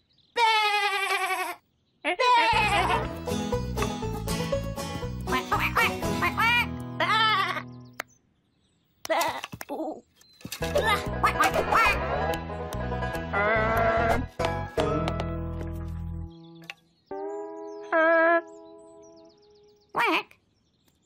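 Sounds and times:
lamb bleating: 0.4s - 3.1s
bouncy cartoon music: 2.6s - 8.0s, 10.6s - 19.6s.

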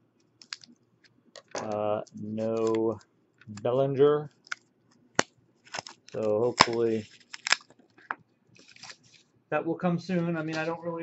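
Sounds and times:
crinkling rustle: 0.3s - 3.7s, 5.6s - 9.3s, 10.1s - 11.0s
plastic sleeves clicking: 0.4s - 0.8s, 1.4s - 3.7s, 5.2s - 9.0s.

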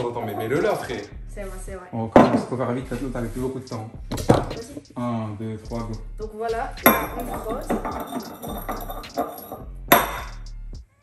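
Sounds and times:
glass scraping on glass bottle: 0.0s - 1.1s, 6.8s - 10.4s
background music: 0.0s - 11.0s.

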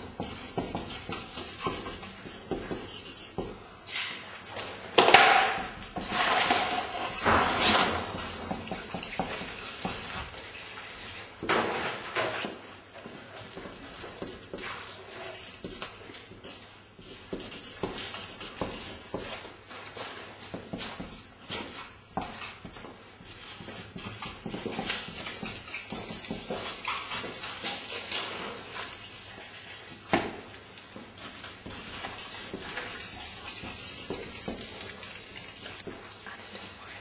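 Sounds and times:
marker tips tapping paper: 0.0s - 3.6s, 7.0s - 10.2s, 15.4s - 19.4s, 20.5s - 28.1s, 29.8s - 35.9s
markers scribbling on paper: 0.0s - 3.6s, 5.3s - 11.3s, 13.4s - 30.2s, 30.8s - 37.0s.

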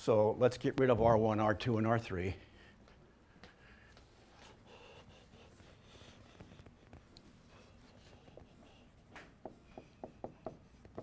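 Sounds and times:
marker writing on a whiteboard: 4.0s - 11.0s.

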